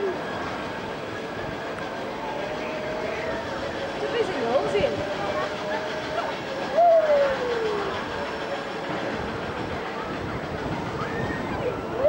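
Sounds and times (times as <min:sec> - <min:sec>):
ride train whine: 0:00.0 - 0:12.0.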